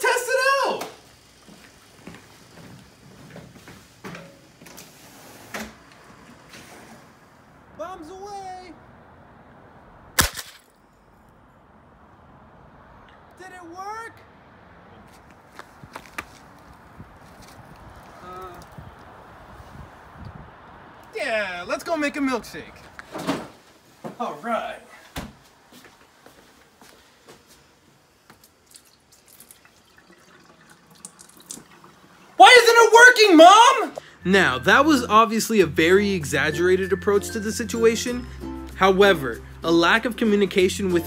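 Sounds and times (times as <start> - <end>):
milk splashing into metal sink: 28.6 - 32.1.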